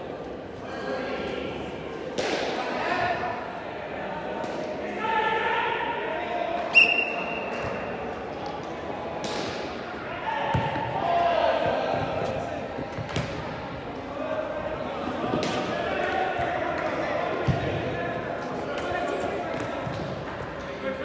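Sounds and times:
soccer ball thumps: 10.5 - 10.9.

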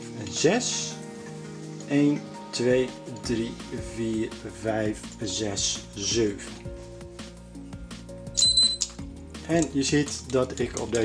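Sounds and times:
short high electronic beep: 8.4 - 8.8.

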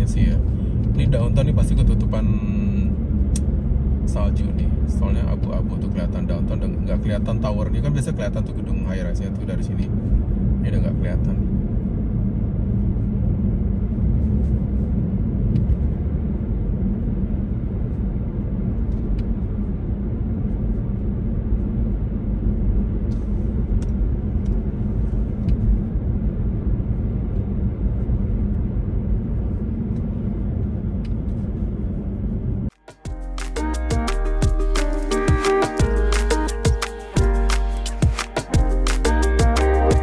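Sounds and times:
road and tyre noise in car: 0.0 - 33.2
music with a beat: 32.7 - 40.0.

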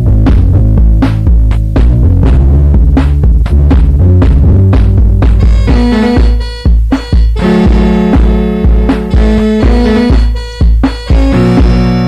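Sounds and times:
drum machine beat: 0.0 - 12.0
repeating bass line: 0.0 - 12.0.

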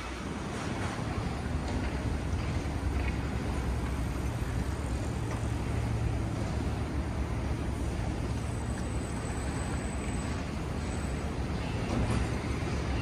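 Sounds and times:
distant traffic hum: 0.0 - 13.0.

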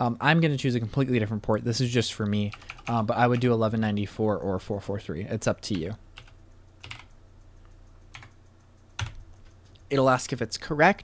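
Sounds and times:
computer keyboard keystrokes: 2.2 - 3.6, 5.7 - 7.2, 8.1 - 8.4, 9.0 - 9.8.

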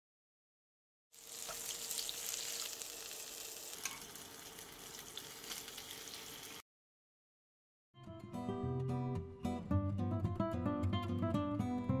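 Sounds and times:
food sizzling in hot oil: 1.1 - 6.6.

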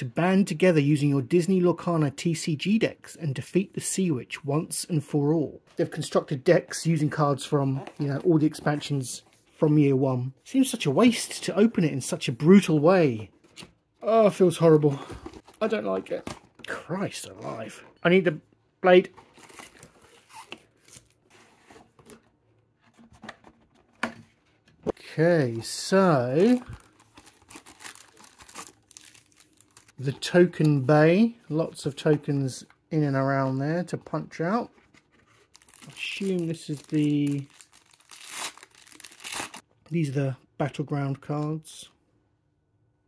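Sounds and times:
cardboard rustling and scraping: 19.0 - 28.7
paper wrapper crinkling and tearing: 25.6 - 30.2, 35.2 - 39.6.

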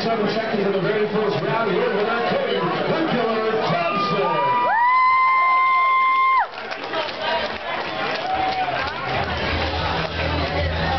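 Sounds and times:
crowd cheering: 1.4 - 10.9
spectator long high shout: 3.8 - 6.5.

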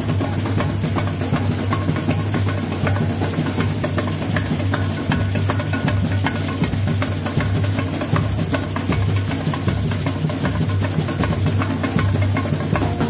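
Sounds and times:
small hand percussion rattling: 0.0 - 13.0.

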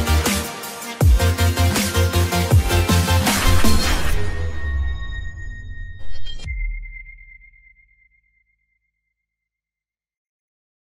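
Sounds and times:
electronic burst: 3.2 - 6.8
high sonar-like ringing tone: 3.8 - 9.4.

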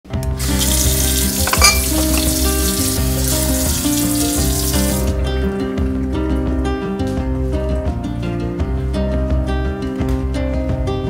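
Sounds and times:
faucet water running into glass: 0.4 - 5.2
acoustic guitar music: 0.4 - 11.0.

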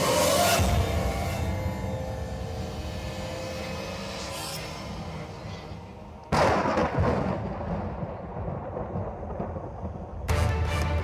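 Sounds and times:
thunderclap crash rumbling: 6.3 - 10.3.

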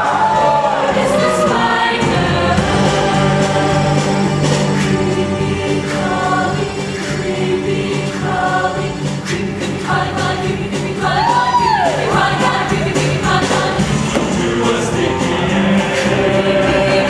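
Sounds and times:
choir singing with instruments: 0.0 - 17.0.

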